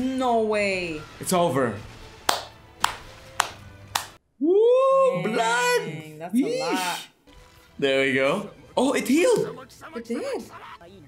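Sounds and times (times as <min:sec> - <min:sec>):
rising voice-like cry: 0:04.4 - 0:07.1.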